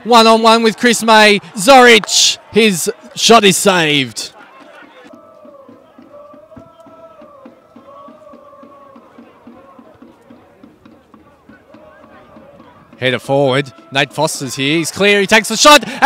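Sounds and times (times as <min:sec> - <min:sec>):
distant voices of spectators: 0:00.0 - 0:15.4
drawn-out wavering chant-like call: 0:05.1 - 0:13.0.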